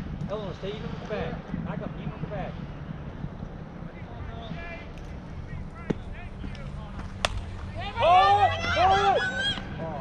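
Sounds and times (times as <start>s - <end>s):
wind rumble on microphone: 0.0s - 10.0s
distant voices calling out: 0.5s - 10.0s.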